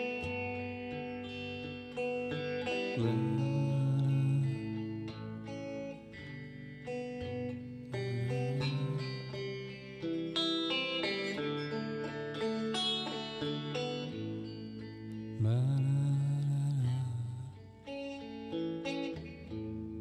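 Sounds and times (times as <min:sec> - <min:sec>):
instrumental guitar music: 0:00.0 - 0:20.0.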